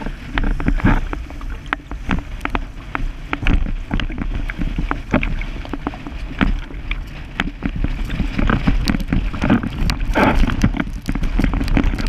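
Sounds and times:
water spray slapping board: 0.0s - 12.0s
wind buffeting microphone: 0.0s - 12.0s.

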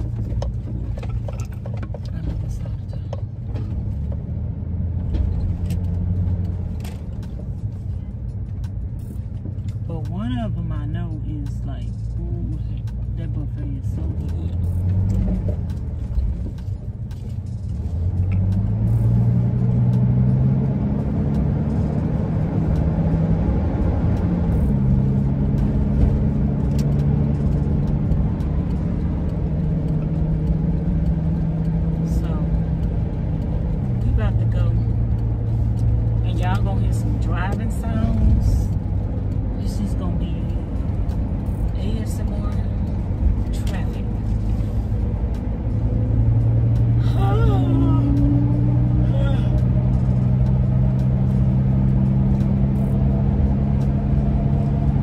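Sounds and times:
road rumble: 0.0s - 55.0s
van engine accelerating: 0.0s - 55.0s.

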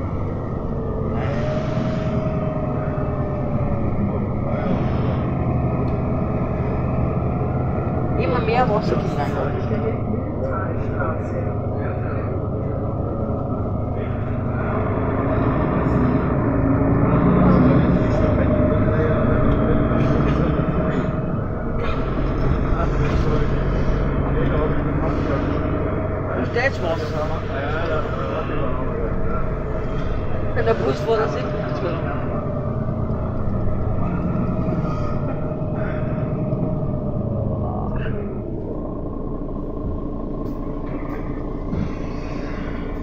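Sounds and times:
bus engine and road rumble: 0.0s - 43.0s.

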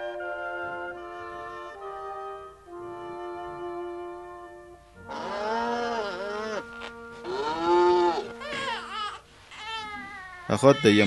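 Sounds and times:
soft sustained film music: 0.0s - 11.0s
newborn baby crying: 5.0s - 11.0s.

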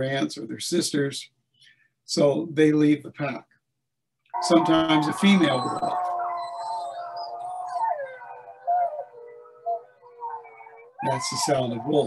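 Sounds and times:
wolves howling: 4.4s - 12.0s.

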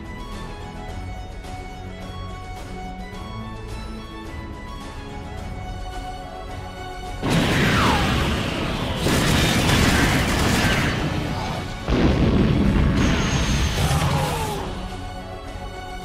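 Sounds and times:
background music: 0.0s - 16.0s
sci-fi blasts and explosions: 7.2s - 15.1s.

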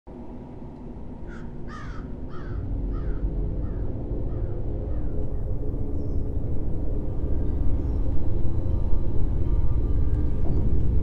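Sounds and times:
low drone: 0.1s - 11.0s
crow cawing: 1.2s - 5.2s.

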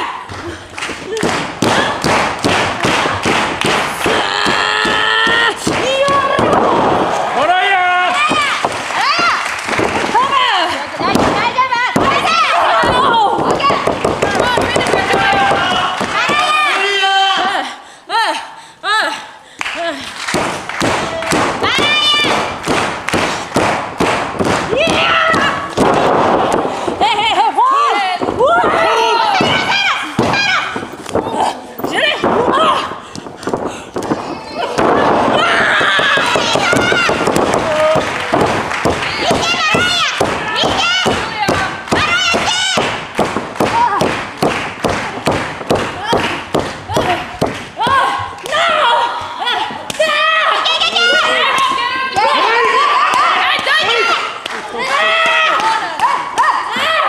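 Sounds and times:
heavy rhythmic thuds: 0.2s - 16.6s, 20.1s - 50.2s.

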